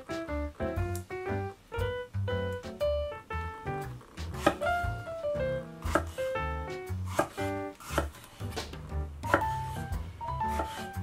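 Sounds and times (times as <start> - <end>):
background music: 0.0 - 11.0
knife cutting on wooden board: 4.2 - 4.7, 5.8 - 11.0.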